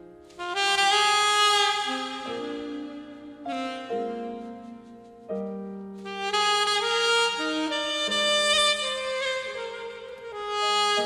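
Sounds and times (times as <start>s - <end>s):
piano accompaniment: 0.0s - 11.0s
saxophone playing slow melody: 0.0s - 11.0s.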